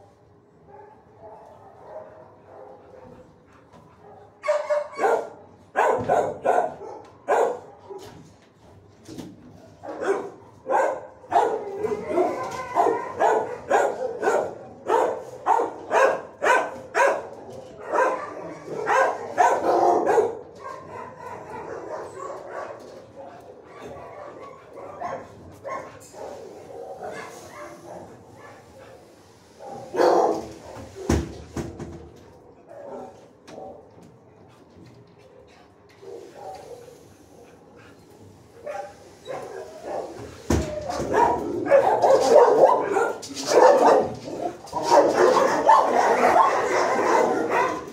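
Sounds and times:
dogs barking: 0:00.6 - 0:03.3, 0:04.0 - 0:08.2, 0:09.8 - 0:31.1, 0:32.4 - 0:34.3, 0:38.6 - 0:47.9.

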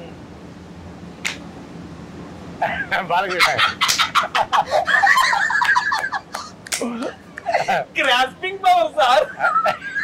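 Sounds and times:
hen-like clucking: 0:03.2 - 0:06.4.

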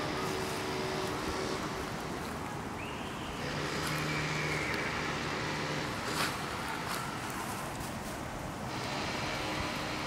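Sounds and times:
steady engine hum: 0:00.0 - 0:10.0.

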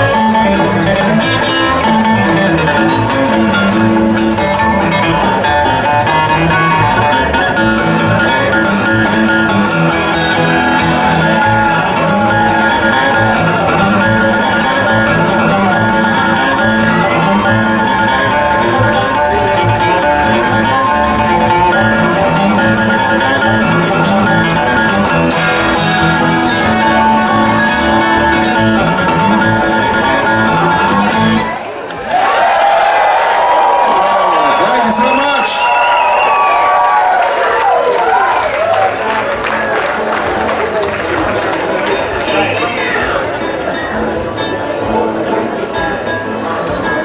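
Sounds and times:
bluegrass band playing: 0:00.0 - 0:32.0, 0:37.6 - 0:47.0
crowd cheering and whooping: 0:10.3 - 0:15.4, 0:31.5 - 0:43.0.

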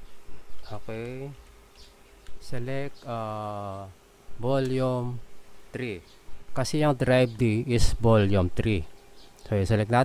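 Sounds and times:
low steady hum: 0:00.0 - 0:10.0
man speaking: 0:00.7 - 0:01.4, 0:02.4 - 0:08.9, 0:09.5 - 0:10.0.

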